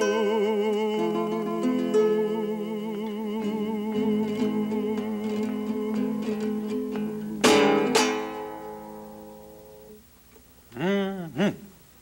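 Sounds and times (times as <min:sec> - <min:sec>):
strummed guitar chords: 0:00.0 - 0:10.0
acoustic guitar fingerpicking: 0:00.0 - 0:11.8.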